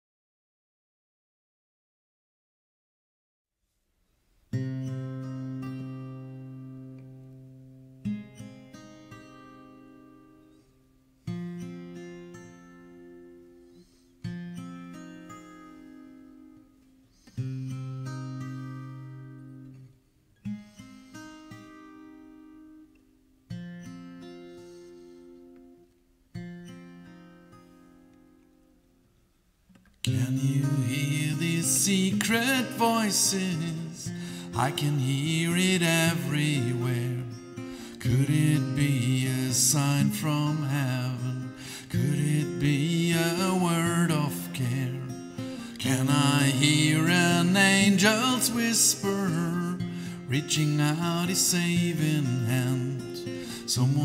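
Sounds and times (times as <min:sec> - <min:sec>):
acoustic guitar chords ringing: 0:04.5 - 0:54.0.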